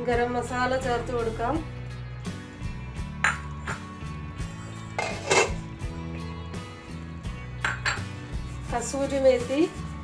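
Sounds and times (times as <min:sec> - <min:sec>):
background music: 0:00.0 - 0:10.0
utensils clinking on a pan: 0:04.9 - 0:05.7.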